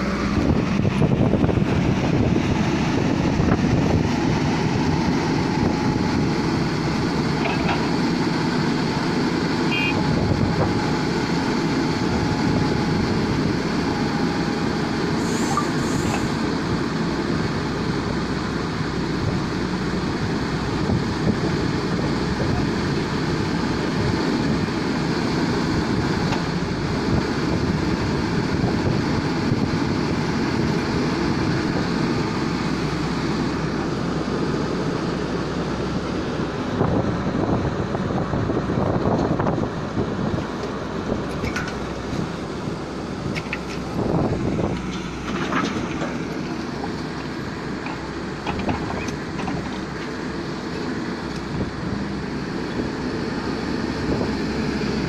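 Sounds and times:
excavator diesel engine running: 0.0s - 55.0s.

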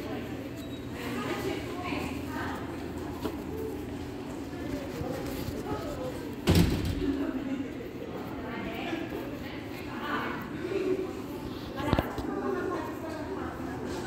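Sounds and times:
door banging shut: 6.4s - 7.2s.

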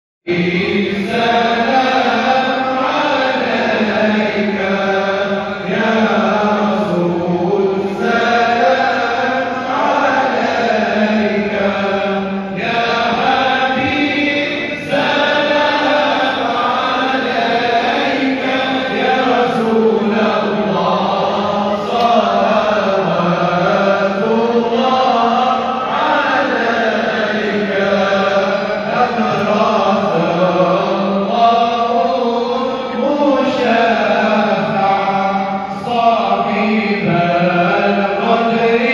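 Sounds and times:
many voices chanting a song: 0.3s - 38.9s.

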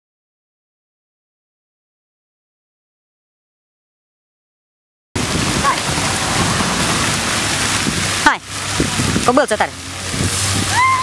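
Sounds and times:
fountain water splashing into basin: 5.2s - 11.0s.

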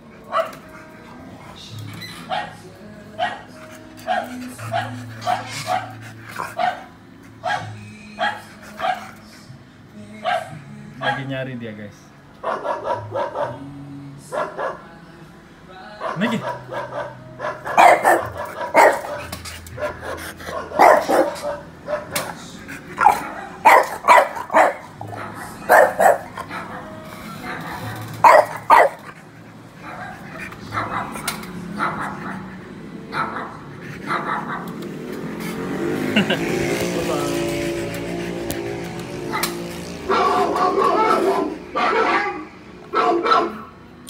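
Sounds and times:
dog barking: 0.2s - 0.7s, 2.2s - 2.6s, 3.2s - 9.1s, 10.2s - 11.3s, 12.4s - 13.7s, 14.3s - 14.9s, 16.0s - 29.2s, 29.8s - 32.5s, 33.1s - 34.8s, 39.3s - 43.7s.

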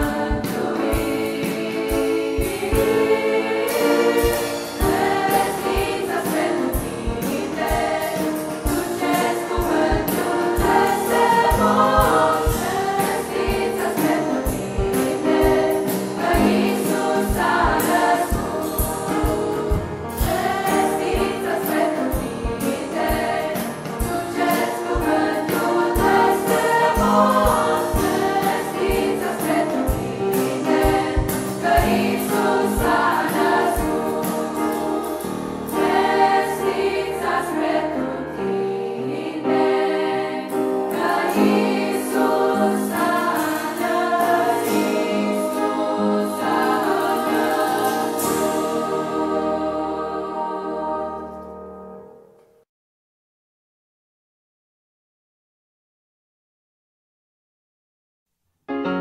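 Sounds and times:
choir singing a carol: 0.0s - 52.2s.

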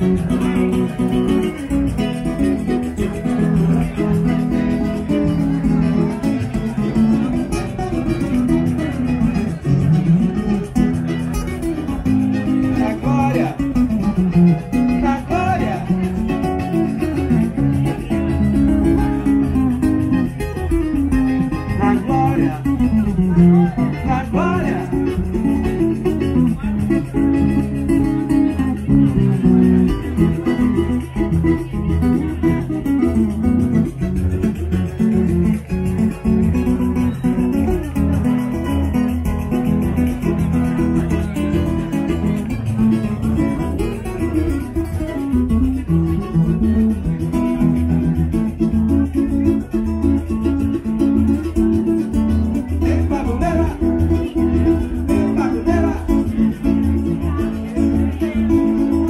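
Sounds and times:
acoustic guitar strummed: 0.0s - 59.0s
small guitar plucked: 0.0s - 59.0s
person singing: 21.7s - 22.8s, 23.5s - 25.3s, 52.7s - 56.4s.

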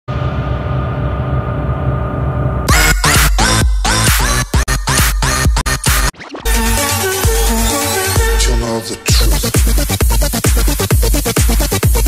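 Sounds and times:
electronic drone: 0.1s - 5.0s.

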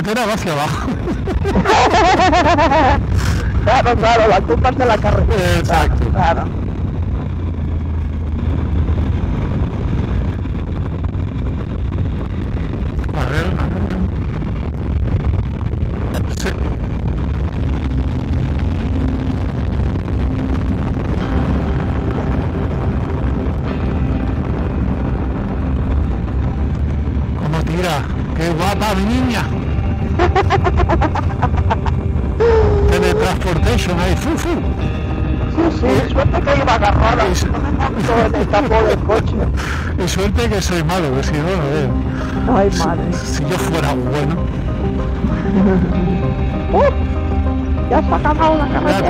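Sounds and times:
wind rumble: 0.0s - 49.0s
motorcycle engine: 0.8s - 49.0s.

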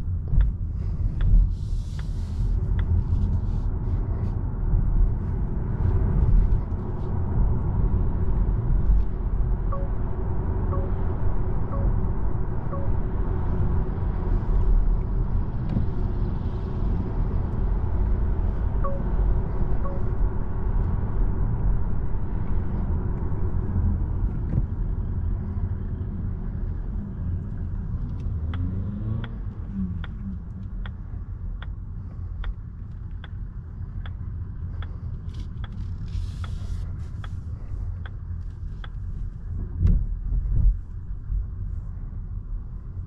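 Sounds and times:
road and tyre rumble: 0.0s - 43.0s
faint ticks: 34.0s - 37.4s.

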